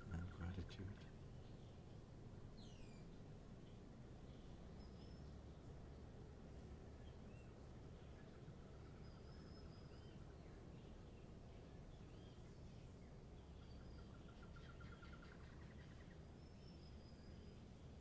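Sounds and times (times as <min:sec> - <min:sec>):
low background rumble: 0:00.0 - 0:18.0
bird trill: 0:02.6 - 0:03.1
bird chirps: 0:02.6 - 0:03.2, 0:04.3 - 0:05.6, 0:07.0 - 0:17.7.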